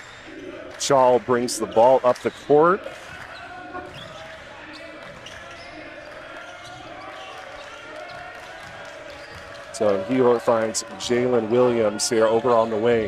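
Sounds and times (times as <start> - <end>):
murmur of spectators' voices: 0.0 - 13.0.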